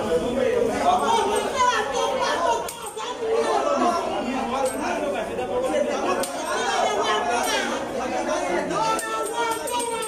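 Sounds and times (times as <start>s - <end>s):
overlapping indistinct voices: 0.0s - 10.0s.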